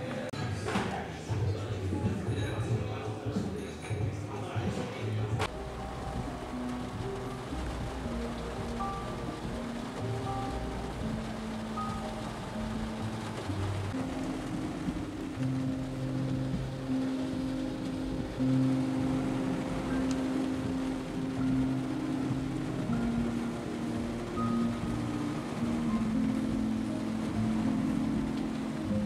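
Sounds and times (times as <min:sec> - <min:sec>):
music of slow low notes: 0:05.3 - 0:29.0
road noise: 0:05.3 - 0:29.0
rain hiss: 0:05.4 - 0:29.0.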